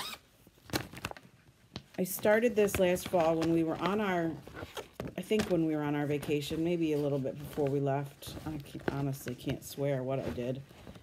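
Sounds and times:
plastic bag rustling: 0:00.3 - 0:11.0.

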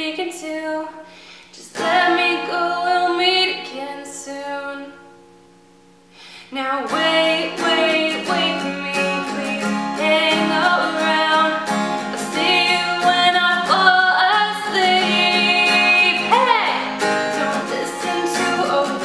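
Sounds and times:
woman singing: 0:00.0 - 0:05.1, 0:06.4 - 0:19.0
acoustic guitar strumming: 0:01.6 - 0:19.0.

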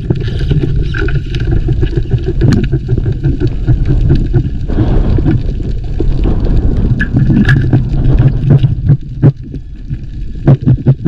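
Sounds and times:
underwater rumble of moving water: 0:00.0 - 0:11.0.

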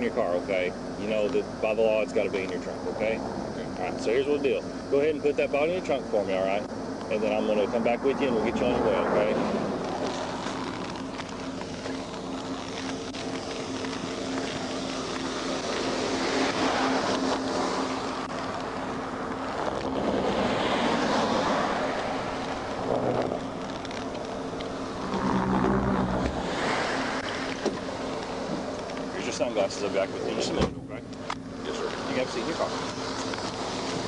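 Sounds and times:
low engine hum: 0:00.0 - 0:34.0.

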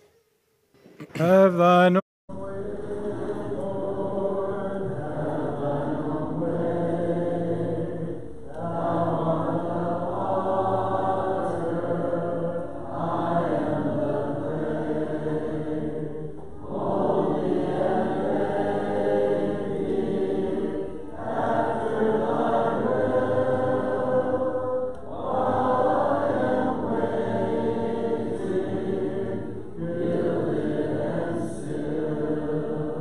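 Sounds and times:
congregation singing a hymn: 0:02.3 - 0:33.0.

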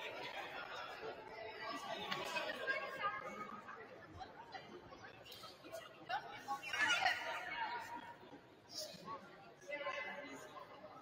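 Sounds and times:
faint chatter of people talking: 0:00.0 - 0:11.0.

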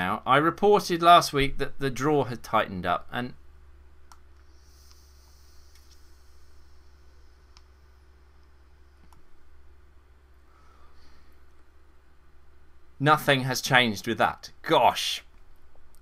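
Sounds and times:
faint hiss of air: 0:04.4 - 0:09.0.

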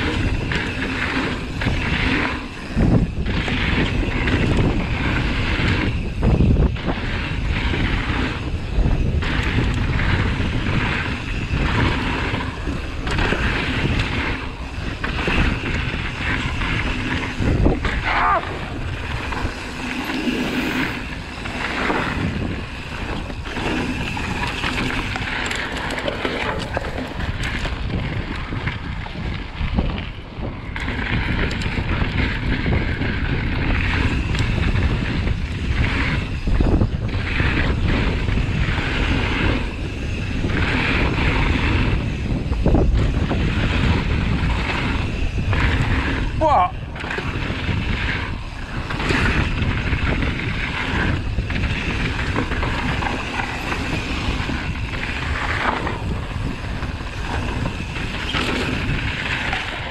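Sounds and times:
bike knocking and rattling: 0:00.0 - 0:59.9
tyres on dirt and gravel: 0:00.0 - 0:59.9
wind noise on microphone: 0:00.0 - 0:59.9.

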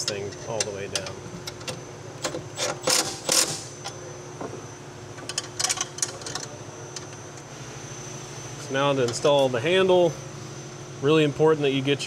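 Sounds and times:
steady hum: 0:00.0 - 0:12.0
power ratchet clicking: 0:02.2 - 0:03.7.

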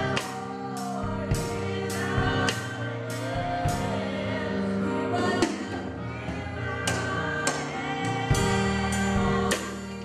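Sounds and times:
woman singing gospel: 0:00.0 - 0:10.0.

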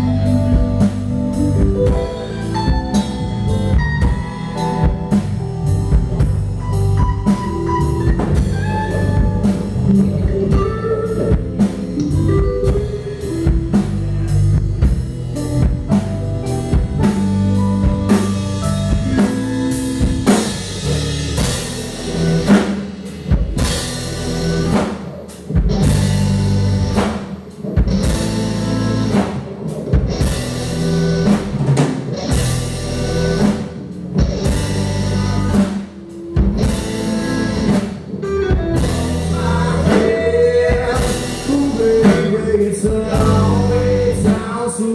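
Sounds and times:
live rock band playing: 0:00.0 - 0:44.9.

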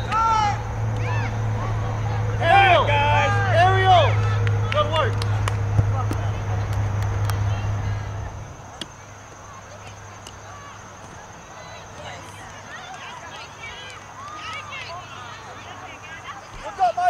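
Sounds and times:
steady low rumble: 0:00.0 - 0:08.8.

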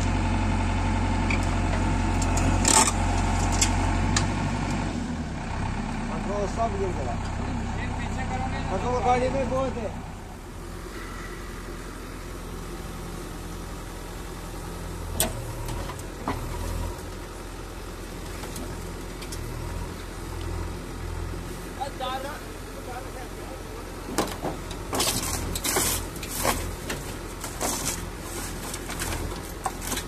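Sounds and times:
diesel engine running at low revs: 0:00.0 - 0:30.0.

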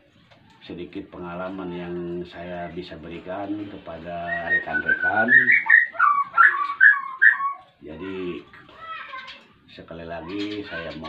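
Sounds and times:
songbirds chirping: 0:00.0 - 0:11.0.

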